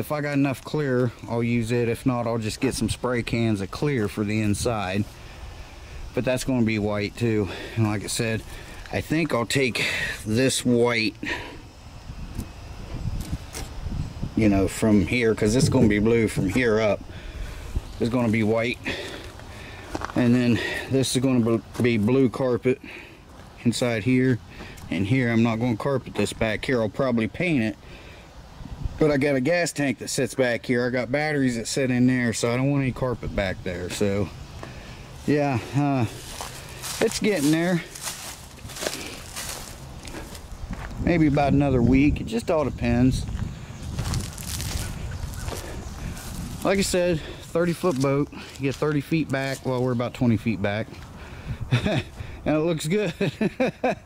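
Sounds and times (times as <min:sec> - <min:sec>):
outdoor background noise: 0:00.0 - 0:54.0
footsteps on concrete: 0:18.1 - 0:20.9, 0:34.6 - 0:41.0, 0:43.2 - 0:49.9
low outdoor rumble: 0:30.7 - 0:52.8.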